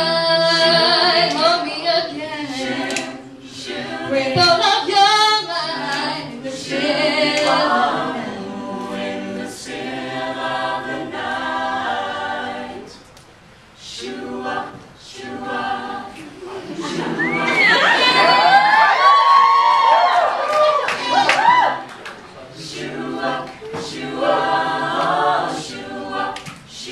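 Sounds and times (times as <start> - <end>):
a cappella group singing in harmony: 0.0 - 18.8, 21.8 - 26.9.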